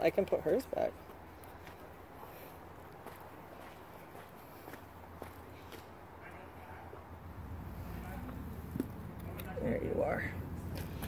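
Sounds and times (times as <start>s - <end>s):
faint footsteps on dirt: 0.0s - 9.6s, 10.4s - 11.0s.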